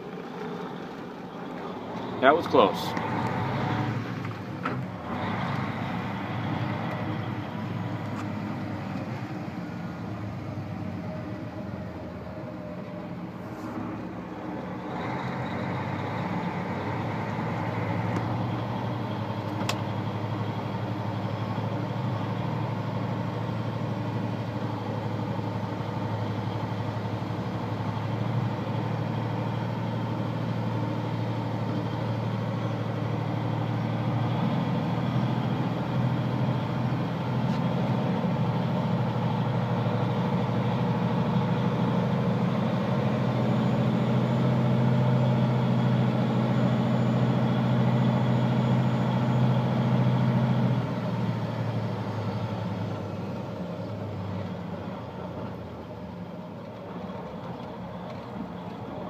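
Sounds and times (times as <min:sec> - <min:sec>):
vehicle engine and road noise: 0:00.0 - 0:59.0.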